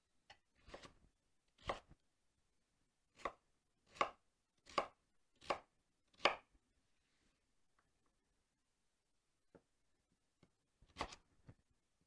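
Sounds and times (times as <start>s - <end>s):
knife cutting on wooden board: 0.6s - 1.0s, 1.6s - 1.9s, 3.2s - 6.4s, 10.9s - 11.2s.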